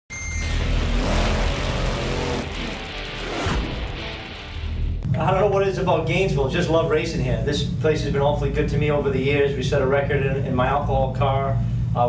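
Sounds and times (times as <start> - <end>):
music: 0.1 - 6.2
racing engine noise: 0.4 - 5.4
whoosh: 0.6 - 5.2.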